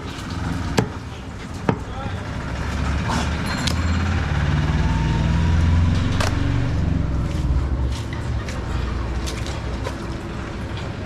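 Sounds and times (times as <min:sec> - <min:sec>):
vehicle engine passing by: 0:02.1 - 0:09.8.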